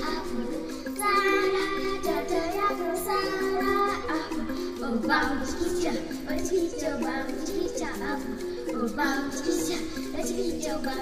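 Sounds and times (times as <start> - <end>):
music with singing voices: 0.0 - 11.0.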